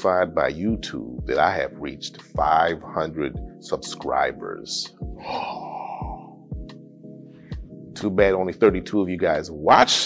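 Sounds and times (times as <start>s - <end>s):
background music: 0.0s - 10.0s
man gasping: 5.2s - 6.5s.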